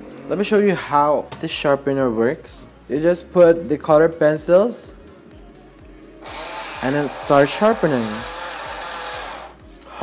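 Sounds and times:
electric pencil sharpener grinding: 6.2 - 9.6.

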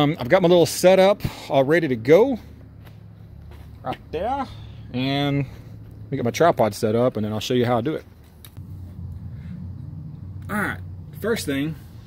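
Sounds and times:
low background rumble: 8.0 - 12.0.

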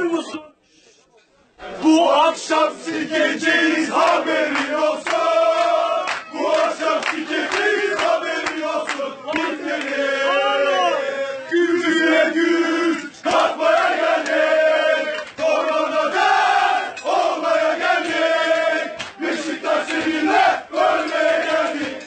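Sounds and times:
group chanting a supporters' song: 1.6 - 22.0.

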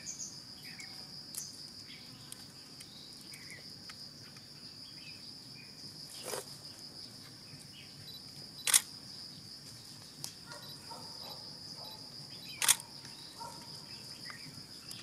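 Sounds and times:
sharp clicks: 8.6 - 8.9, 12.6 - 13.2.

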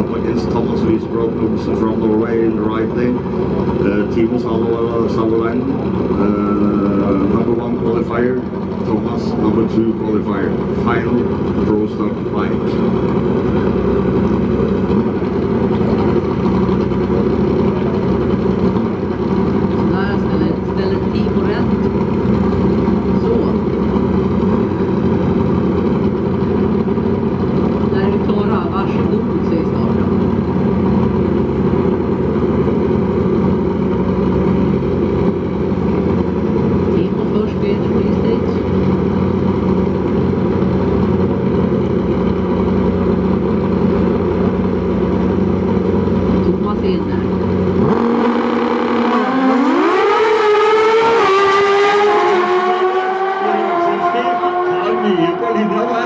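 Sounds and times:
drag motorcycles engines: 0.0 - 56.0.

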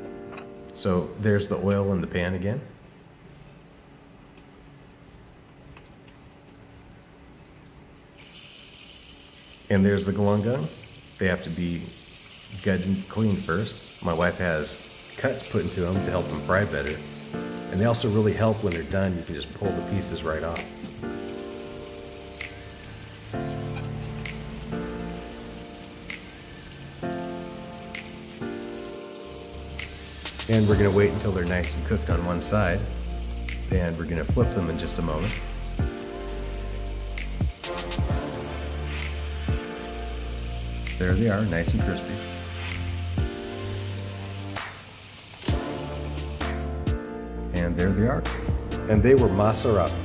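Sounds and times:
fish frying in oil: 8.2 - 46.7
sustained chords music: 14.6 - 44.7, 45.4 - 50.0.

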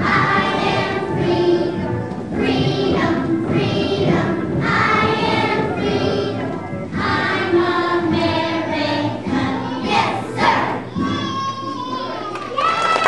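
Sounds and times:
children singing in unison: 0.0 - 11.6.

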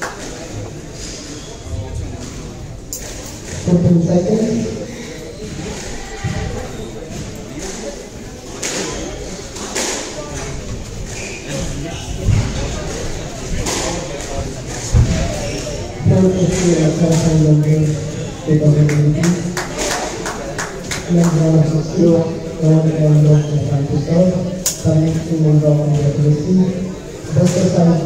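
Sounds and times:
voices echoing in a hall: 0.0 - 28.0.

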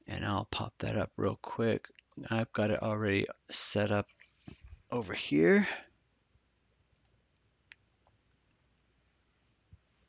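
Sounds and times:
computer mouse click: 6.9 - 7.8.

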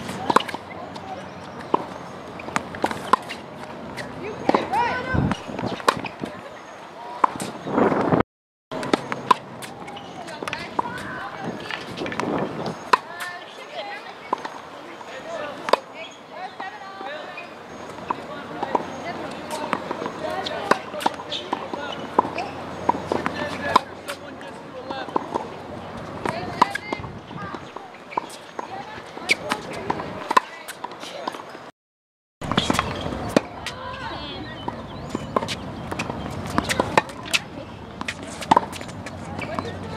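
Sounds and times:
tennis ball struck by racket: 0.0 - 0.8, 8.8 - 13.3, 18.0 - 24.2, 32.4 - 33.8, 34.7 - 39.8
voices chattering: 0.0 - 31.7, 32.4 - 39.9.

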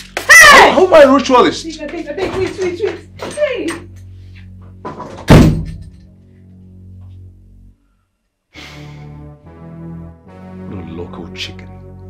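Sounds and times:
low music drone: 1.5 - 12.0
loud heavy thud: 5.0 - 5.8.

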